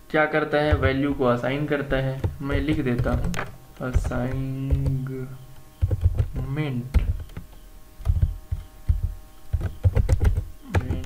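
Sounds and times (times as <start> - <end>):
faint steady hum: 0.0 - 11.0
keyboard keys thudding: 0.6 - 11.0.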